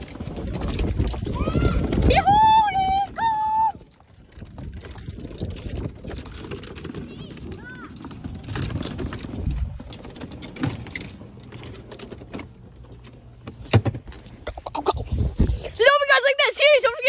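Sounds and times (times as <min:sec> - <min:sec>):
knocks and rattles from cart: 0:00.0 - 0:03.3, 0:04.0 - 0:14.6
wind buffeting microphone: 0:00.0 - 0:10.2, 0:14.8 - 0:16.0.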